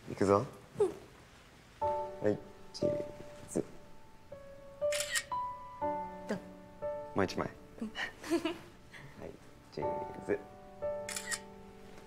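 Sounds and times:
soft background music: 1.7 - 12.0
camera shutter double click: 4.9 - 5.4, 11.1 - 11.5.

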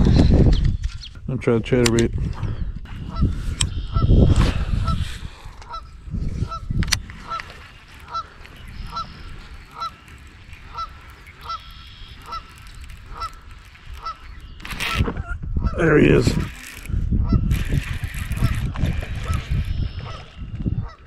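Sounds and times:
geese honking: 5.6 - 15.0.

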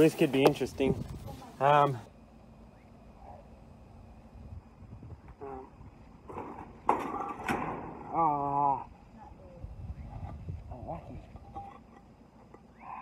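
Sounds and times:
concrete slab scraping: 10.2 - 12.6.

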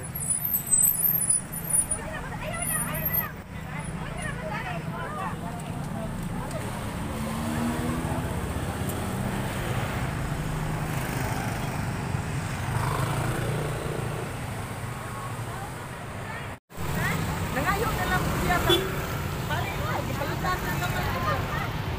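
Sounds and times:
scooters and cars passing: 0.0 - 21.9.

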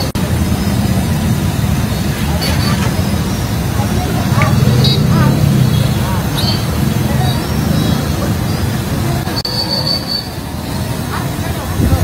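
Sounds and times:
low traffic rumble: 0.0 - 12.0
background voices: 0.9 - 9.4.

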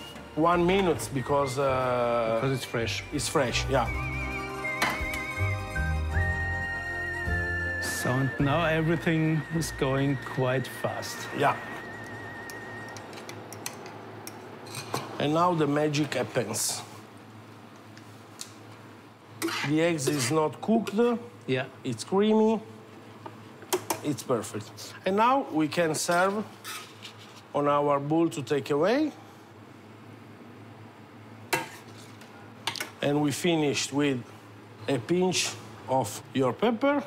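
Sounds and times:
faint steady high whine: 0.0 - 37.0.

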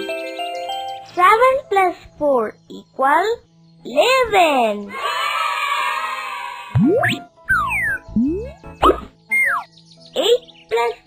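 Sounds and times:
children's background music: 0.0 - 11.0
sliding-pitch cartoon boings: 6.8 - 9.7.

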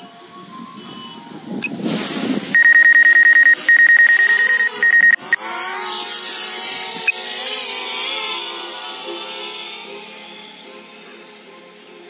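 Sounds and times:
drone motors whining: 2.6 - 7.4.

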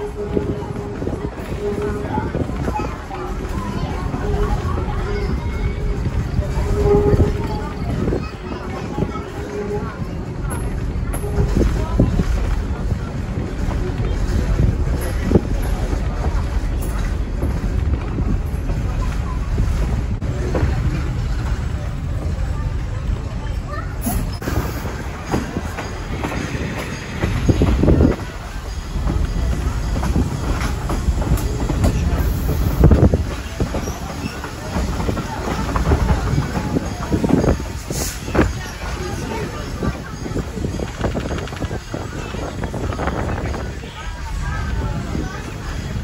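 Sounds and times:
tram wheels rumbling: 0.0 - 46.0
wind buffeting microphone: 0.0 - 46.0.

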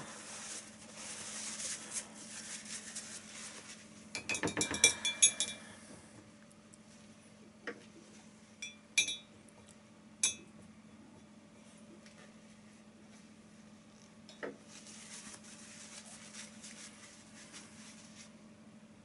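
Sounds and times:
tissue paper rustling: 0.0 - 4.0, 14.7 - 18.4
tool clinking against glassware: 4.2 - 5.7, 8.6 - 9.3, 10.2 - 10.5.

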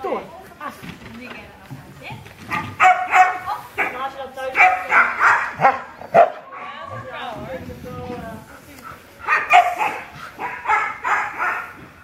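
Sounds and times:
dog barking: 2.5 - 4.0, 4.6 - 6.8, 9.2 - 11.8.

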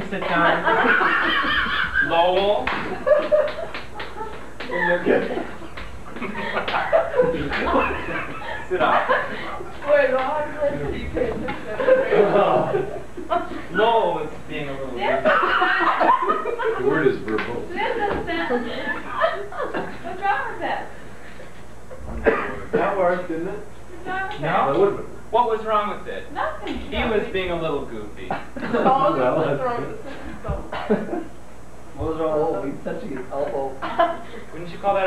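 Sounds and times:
laughter: 0.2 - 9.8, 11.4 - 13.7, 15.2 - 17.0, 17.8 - 20.1, 28.3 - 29.5, 30.1 - 31.3, 33.8 - 34.4
people snickering: 0.2 - 9.9, 11.3 - 13.8, 15.2 - 17.1, 17.8 - 20.2, 21.3 - 22.8.

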